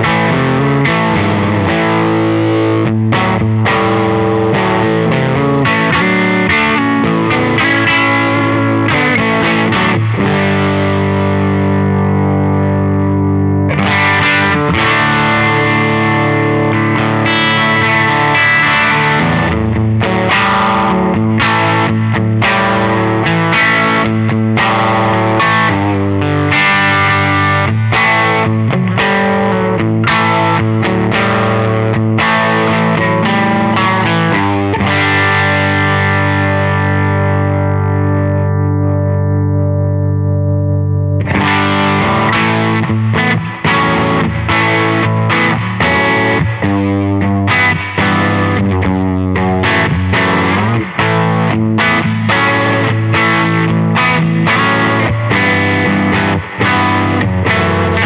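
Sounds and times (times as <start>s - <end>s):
electric guitar strumming chords: 0.0s - 58.0s.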